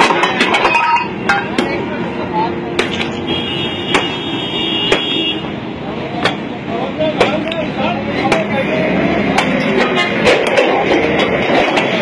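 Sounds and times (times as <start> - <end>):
people talking: 0.3 - 3.2, 5.8 - 11.6
sharp knocks: 3.9 - 4.2.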